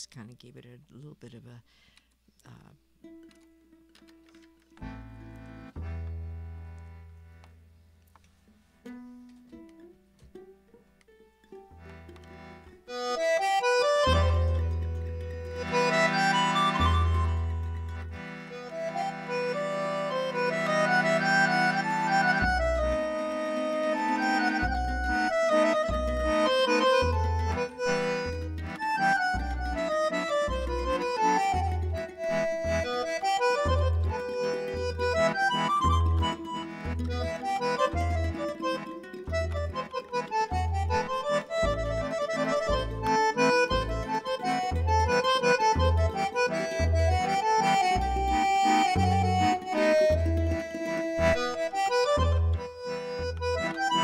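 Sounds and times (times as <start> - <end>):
accordion melody: 2.5 - 54.0
rhythmic bass line: 4.8 - 7.6, 11.8 - 54.0.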